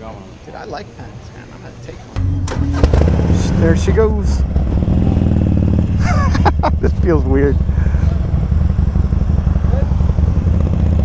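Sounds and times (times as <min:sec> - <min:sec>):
motorcycle engine running: 0:02.2 - 0:11.0
person laughing: 0:05.9 - 0:08.2.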